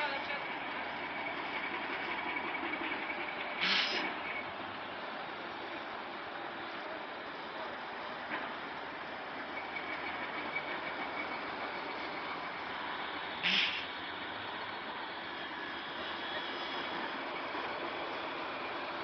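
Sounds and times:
construction machinery engines running: 0.0s - 19.0s.

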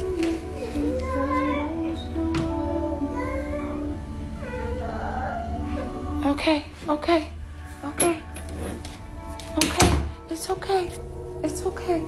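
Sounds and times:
small child whimpering and crying: 3.2s - 6.1s.

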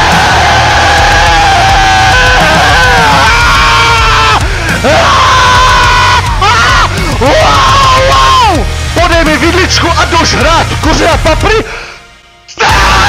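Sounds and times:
metal song with distorted guitars: 0.0s - 11.6s, 12.6s - 13.0s
person yelling: 2.0s - 8.6s.

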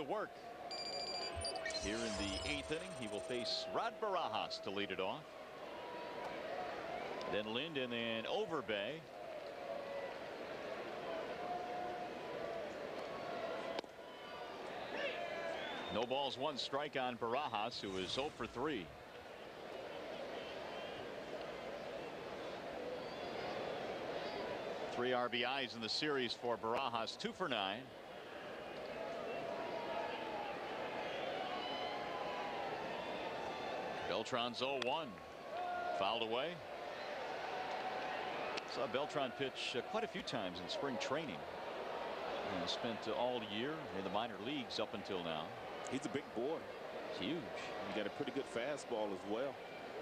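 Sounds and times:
stadium crowd murmur: 0.0s - 50.0s.

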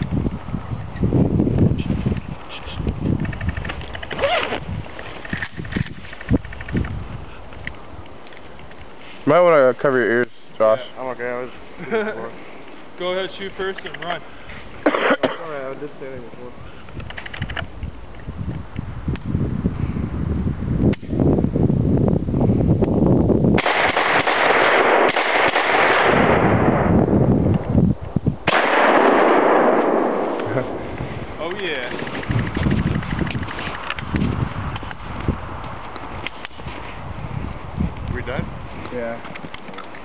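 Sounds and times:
gunshots: 23.6s - 26.9s, 28.4s - 30.8s.

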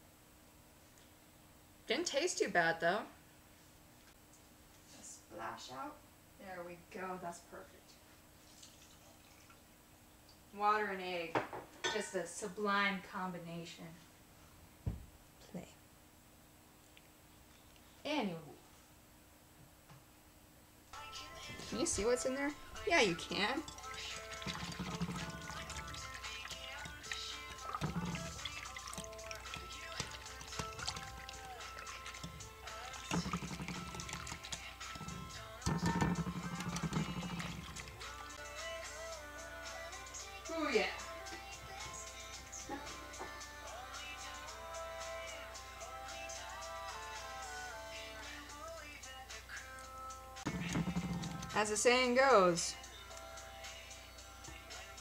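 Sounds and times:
faint steady hum: 0.0s - 24.4s
background music: 21.0s - 55.0s
whisk beating eggs in bowl: 21.6s - 38.2s.

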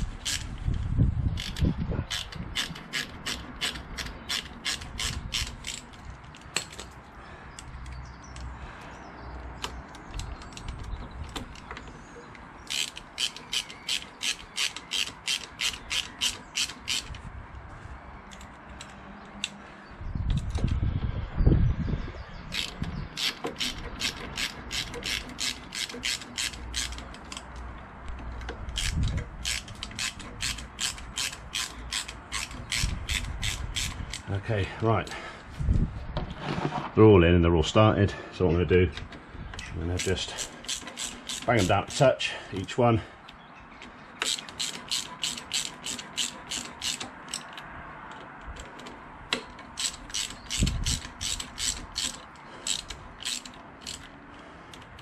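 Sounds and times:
socket ratchet clicking: 0.0s - 7.0s, 12.4s - 17.2s, 22.5s - 34.3s, 39.6s - 42.0s, 44.2s - 55.0s.

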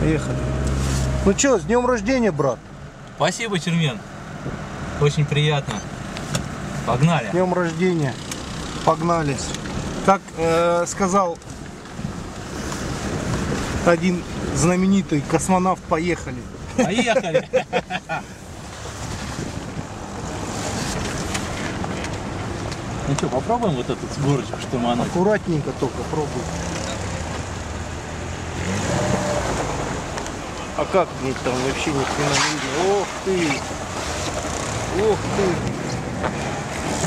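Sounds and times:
engine and tyres rumbling: 0.0s - 37.0s.

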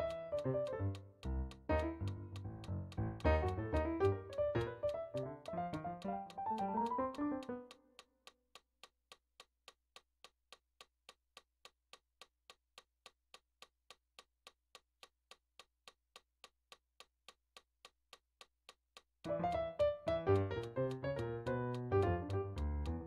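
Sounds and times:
digital piano phrase: 0.0s - 1.0s, 1.7s - 7.7s, 19.3s - 23.0s
metronome clicking: 0.0s - 10.0s, 19.2s - 23.0s.

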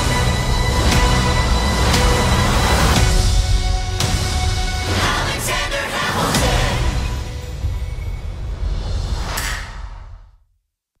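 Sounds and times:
whoosh: 7.5s - 10.4s.

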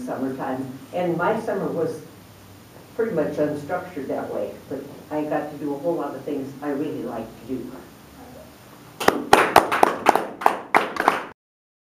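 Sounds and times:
group hand clapping: 9.0s - 11.4s.

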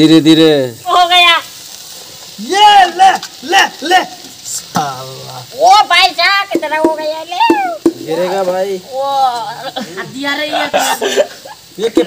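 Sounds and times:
cabbage sizzling in a wok: 0.0s - 12.0s.

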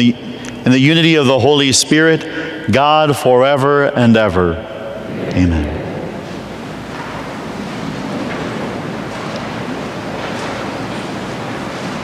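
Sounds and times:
steady rushing background noise: 5.0s - 12.0s.

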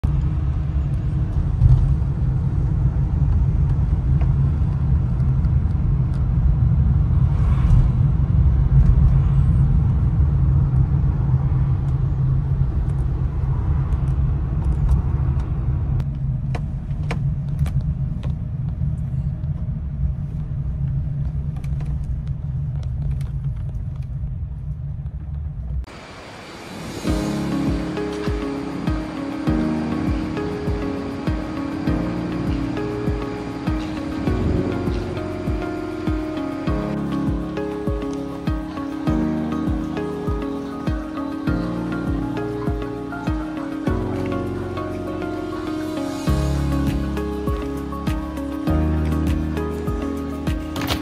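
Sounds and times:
moving vehicle rumble: 0.0s - 51.0s.

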